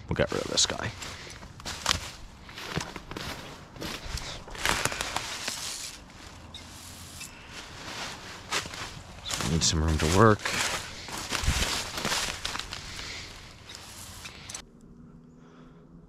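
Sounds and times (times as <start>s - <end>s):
footsteps through dry leaves: 0.2s - 14.6s.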